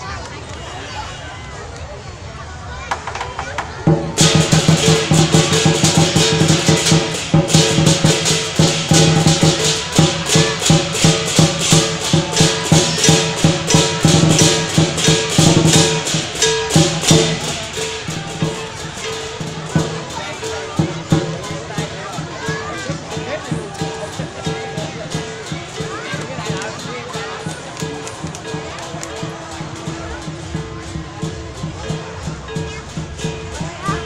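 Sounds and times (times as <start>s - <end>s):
crowd murmur: 0.0s - 34.0s
percussion band drums cymbals gong: 2.8s - 34.0s.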